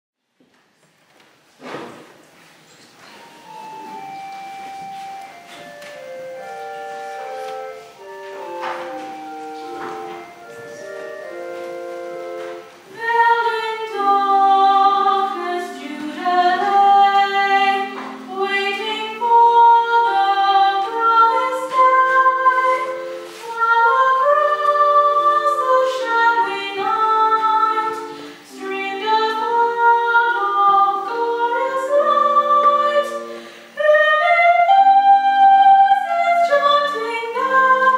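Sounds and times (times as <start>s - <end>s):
choir singing in a church: 3.1s - 37.9s.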